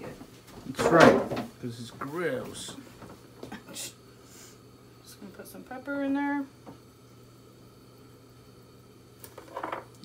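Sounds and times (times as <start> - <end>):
low hum with light hiss: 0.0 - 10.0.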